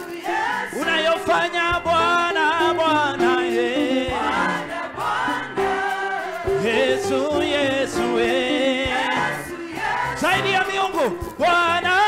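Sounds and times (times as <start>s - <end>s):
choir and congregation singing: 0.0s - 11.5s.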